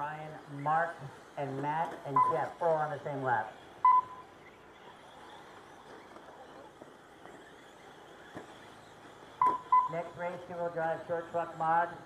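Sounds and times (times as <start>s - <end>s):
short electronic beeps: 2.1s - 2.6s, 3.8s - 4.4s, 9.4s - 10.1s.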